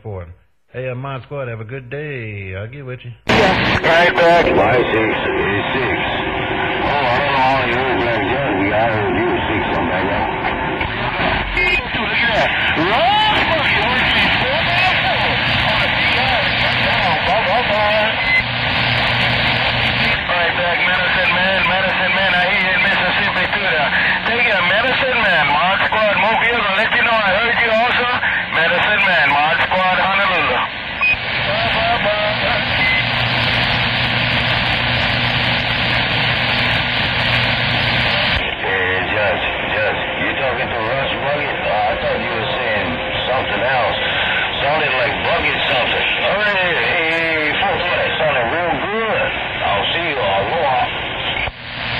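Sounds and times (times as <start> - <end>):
radio static hiss: 3.2 - 51.9
garbled distant radio voices: 3.3 - 18.2, 36.4 - 51.5.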